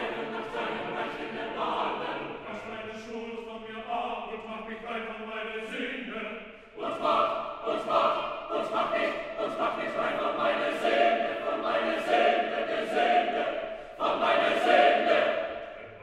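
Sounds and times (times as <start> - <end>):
choir singing a cappella: 0.0 - 16.0.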